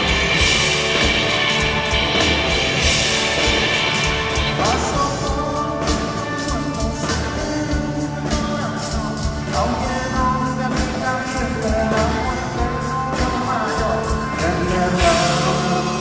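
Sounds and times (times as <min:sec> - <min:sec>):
lead voice singing: 0:00.0 - 0:16.0
rock band playing live: 0:00.0 - 0:16.0.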